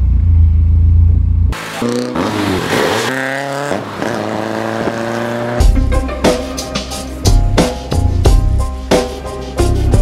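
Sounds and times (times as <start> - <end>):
car engine rumbling: 0.0 - 5.8.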